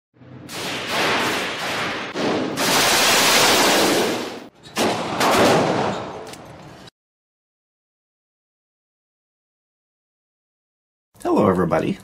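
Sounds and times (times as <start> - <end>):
rapid gunshots echoing indoors: 0.4 - 6.3.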